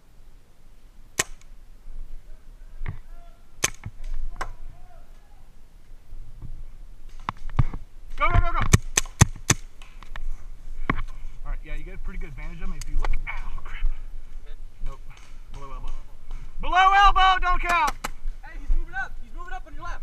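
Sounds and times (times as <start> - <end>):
paintball markers firing: 1.2 - 1.5, 8.6 - 10.1.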